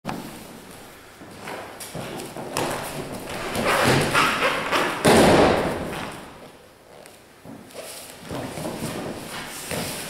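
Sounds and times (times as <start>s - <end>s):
feet and clothing scuffling: 6.9s - 10.0s.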